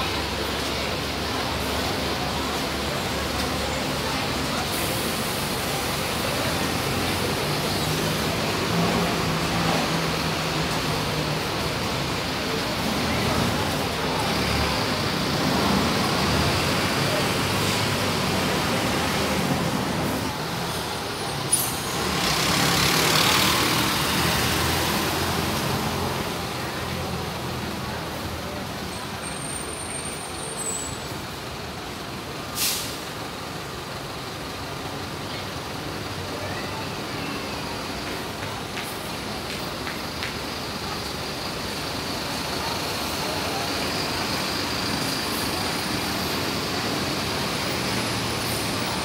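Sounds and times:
diesel bus engine rumble: 0.0 - 49.0
air brake hiss: 32.5 - 33.1
sharp burst of air: 32.5 - 33.1.

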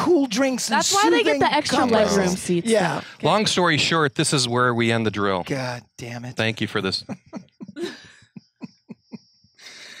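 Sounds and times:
man laughing: 6.6 - 9.2.

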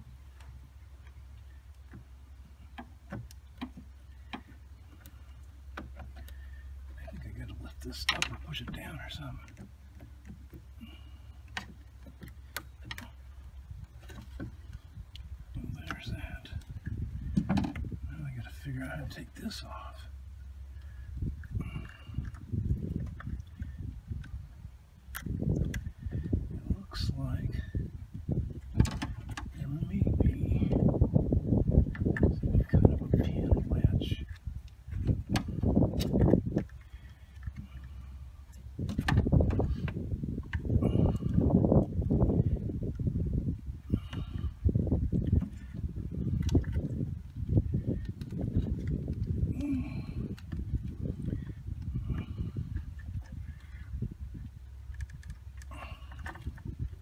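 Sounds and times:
low rumbling noise: 0.0 - 57.0.

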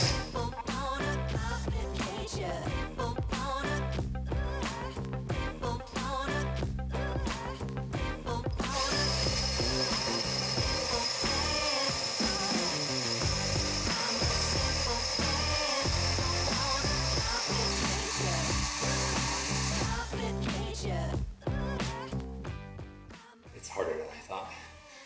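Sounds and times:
drill grinding into stone: 0.0 - 0.4, 8.6 - 20.1.

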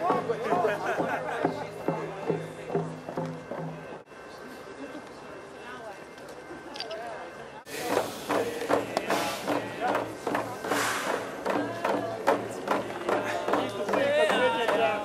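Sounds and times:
hand drums beating: 0.0 - 4.0, 7.9 - 15.0
crowd voices: 0.0 - 15.0
voices singing held notes: 7.8 - 15.0.

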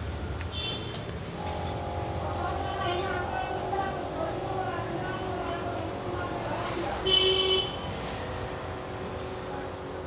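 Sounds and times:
indistinct voices talking: 1.4 - 7.2.

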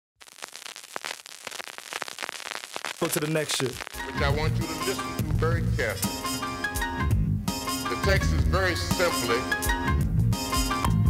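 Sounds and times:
vinyl record crackle: 0.0 - 6.2
record hiss: 0.2 - 9.7.

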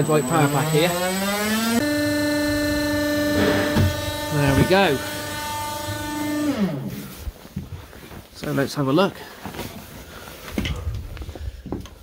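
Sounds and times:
organ pipe note sliding down: 0.0 - 6.9.

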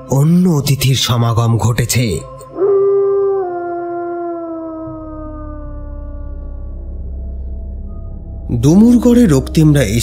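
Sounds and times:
wolf howling: 2.4 - 7.2
low rumbling drone: 2.5 - 10.0.

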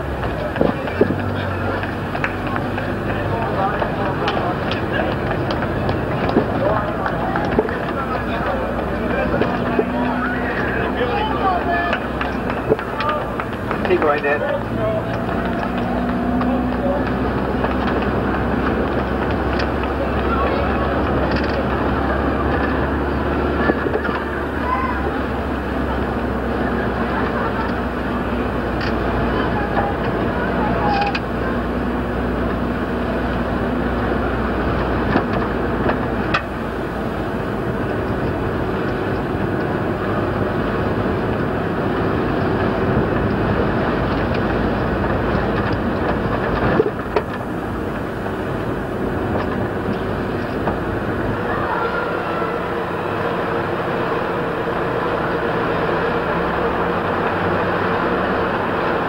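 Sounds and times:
outdoor hiss and rumble: 0.0 - 59.0
faint spectator voices: 49.9 - 59.0.

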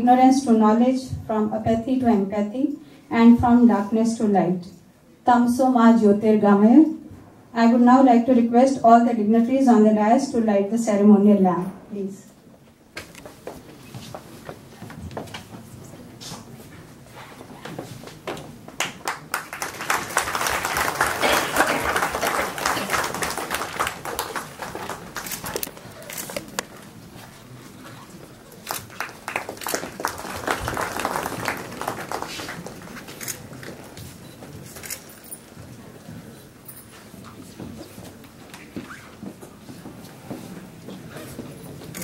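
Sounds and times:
applause from small gathering: 18.8 - 25.7, 28.6 - 33.4.

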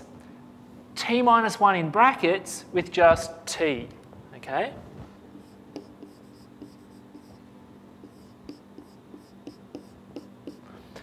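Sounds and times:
low room hum: 0.0 - 11.0
marker squeaking on whiteboard: 5.4 - 7.4, 8.0 - 10.6.

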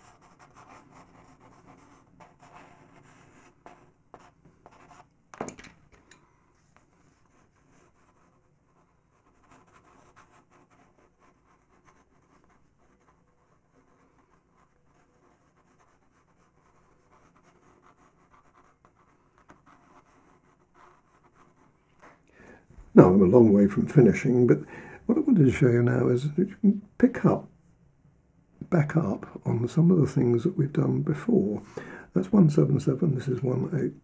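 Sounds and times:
pencil scratching on paper: 0.0 - 5.1, 6.5 - 22.1.

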